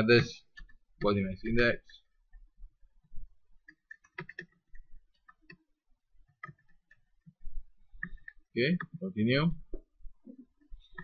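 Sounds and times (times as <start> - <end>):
keyboard keys clicking: 3.6 - 5.6, 6.3 - 7.4.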